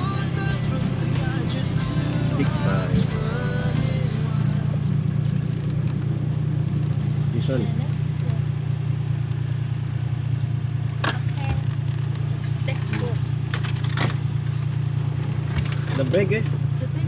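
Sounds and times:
engine running low drone: 0.0s - 17.0s.

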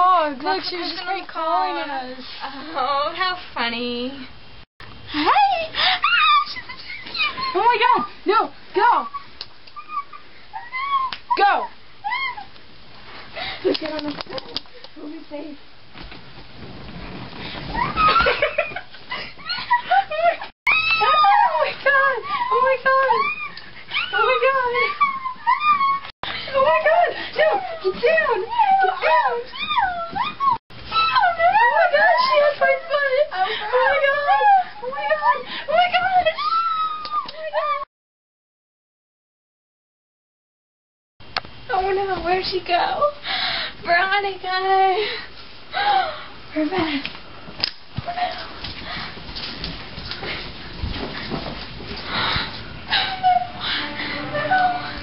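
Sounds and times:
girls screaming: 20.7s - 22.3s.

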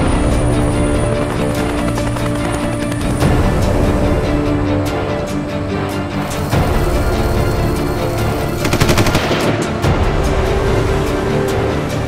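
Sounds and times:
background music: 0.0s - 12.0s
automatic gunfire burst: 8.6s - 9.6s.

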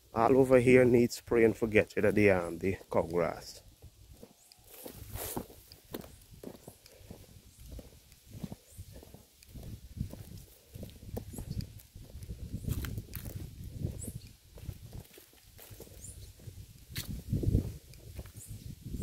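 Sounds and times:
footsteps on dry earth path: 0.0s - 19.0s.

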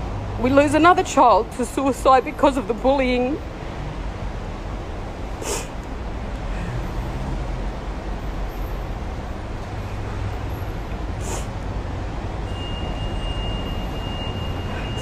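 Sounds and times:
person sniffing: 5.4s - 5.7s, 11.2s - 11.6s.

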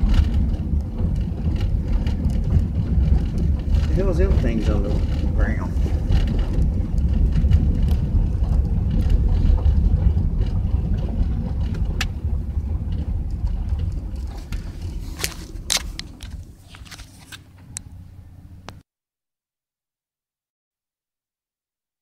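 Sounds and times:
tyres and engine rumble: 0.0s - 18.8s.

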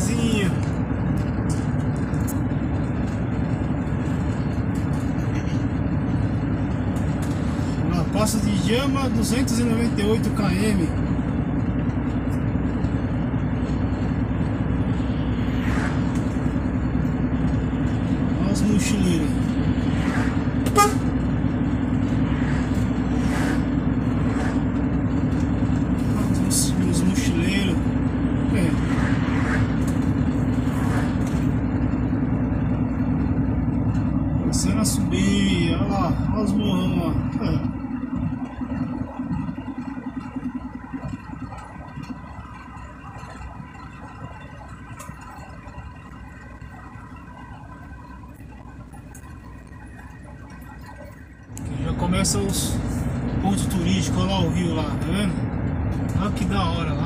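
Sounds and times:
truck engine droning: 0.0s - 57.0s.

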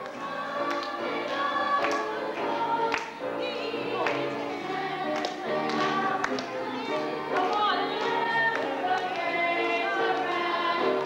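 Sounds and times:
children's choir singing gospel: 0.0s - 11.0s
sharp hand claps: 0.6s - 3.2s, 5.1s - 6.6s, 7.4s - 9.3s.

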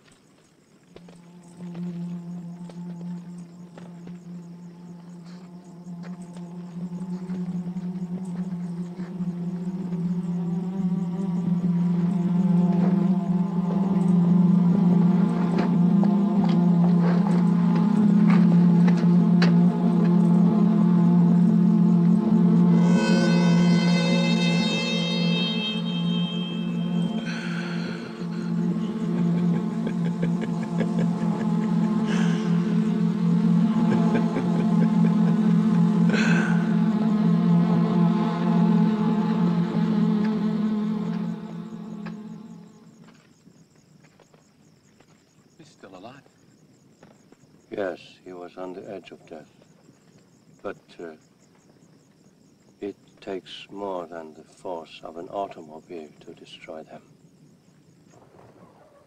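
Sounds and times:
eerie film score music: 0.8s - 43.3s
buzzing drone: 1.0s - 43.3s
short musical accents: 22.6s - 36.9s
bright high sliding tone: 22.8s - 28.9s.

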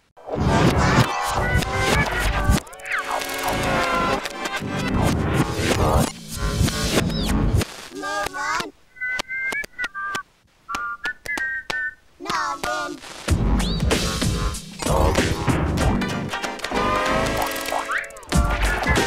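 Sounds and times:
music: 0.3s - 7.5s, 13.3s - 19.0s
sharp clicks: 1.0s - 4.6s, 5.6s - 12.7s
whistle-like notes: 10.7s - 12.0s.

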